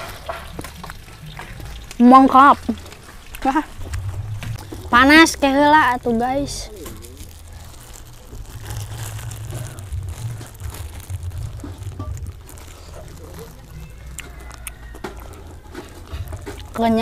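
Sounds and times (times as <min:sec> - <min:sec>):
eating noises: 0:00.0 - 0:17.0
plastic bag crinkling: 0:00.0 - 0:17.0
steady low rumble: 0:00.7 - 0:14.5.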